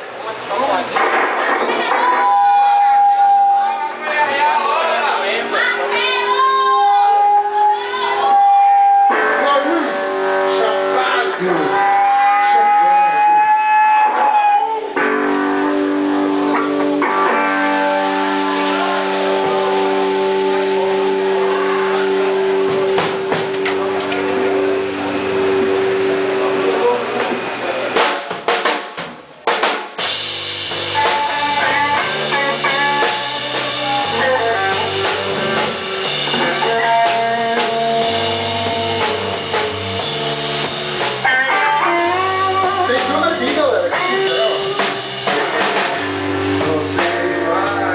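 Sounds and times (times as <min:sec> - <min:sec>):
live rock band: 0:00.0 - 0:47.9
electric guitar chords: 0:01.0 - 0:04.0, 0:05.5 - 0:28.6, 0:29.5 - 0:47.9
drum hits: 0:15.0 - 0:26.4, 0:27.1 - 0:47.9
stepping bass line: 0:30.0 - 0:47.9.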